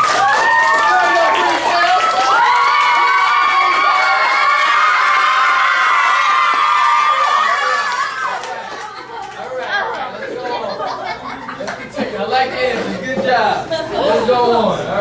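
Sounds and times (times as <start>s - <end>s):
children cheering and shouting: 0.0s - 8.9s
clapping: 0.0s - 10.1s.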